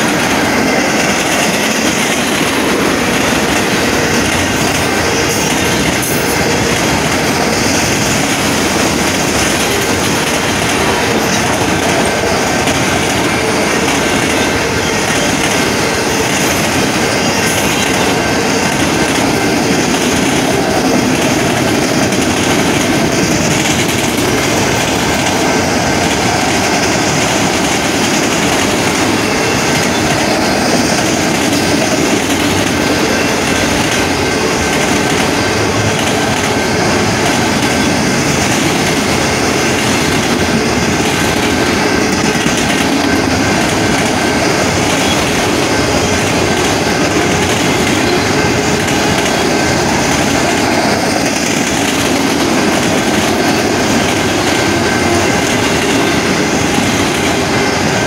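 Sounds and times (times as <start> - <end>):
freight train wheels rumbling: 0.0 - 58.0.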